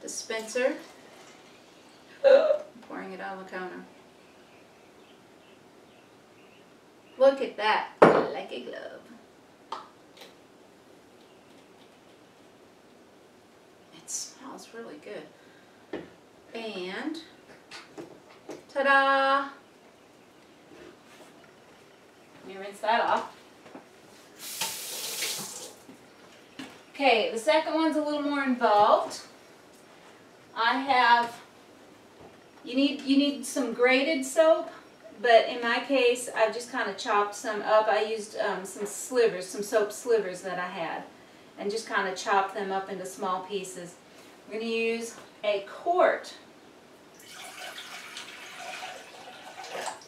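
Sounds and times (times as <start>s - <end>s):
faucet running: 24.4s - 25.8s, 47.2s - 50.0s
water pouring into a metal saucepan: 47.2s - 50.0s.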